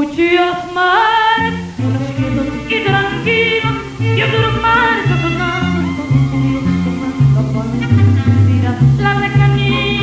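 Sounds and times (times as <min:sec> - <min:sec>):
mariachi band playing: 0:01.6 - 0:10.0.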